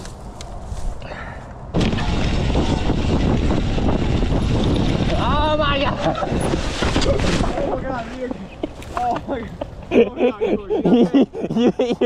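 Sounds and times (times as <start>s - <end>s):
wind rushing over microphone: 1.6s - 10.9s.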